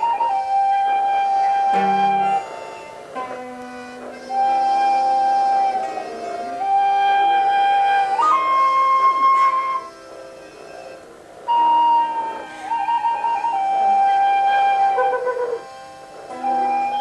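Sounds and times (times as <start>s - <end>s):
flute-like wind instrument: 0.0s - 17.0s.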